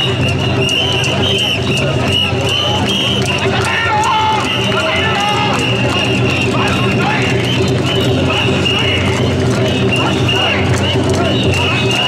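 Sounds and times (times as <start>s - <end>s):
crowd chanting: 0.0s - 12.0s.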